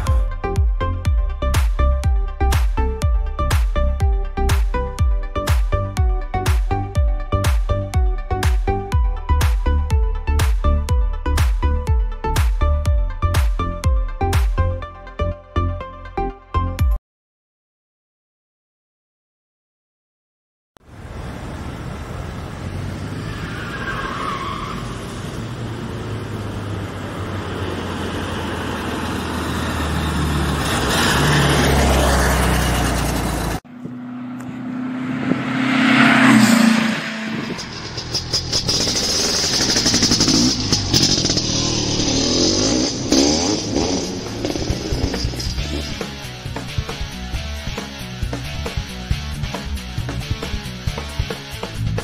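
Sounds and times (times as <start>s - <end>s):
music: 0.0s - 17.0s, 44.3s - 52.0s
sweeping rush: 31.0s - 46.4s.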